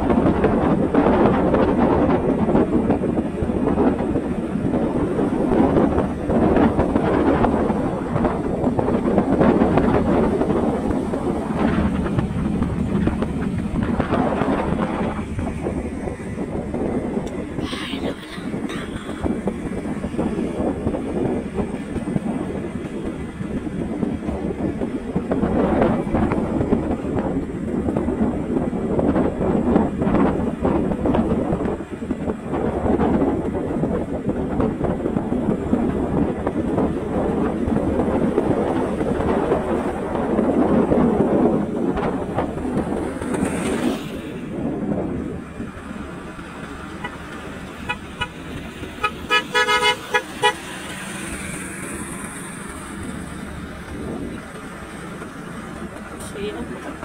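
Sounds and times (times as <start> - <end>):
motorcycle riding: 0.0 - 57.0
road noise: 0.0 - 57.0
wind rushing over microphone: 0.0 - 57.0
horn short toots: 49.0 - 50.7.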